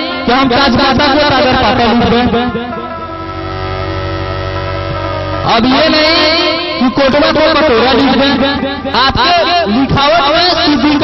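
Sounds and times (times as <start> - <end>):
steady held chord: 0.0 - 11.0
person speaking: 5.4 - 11.0.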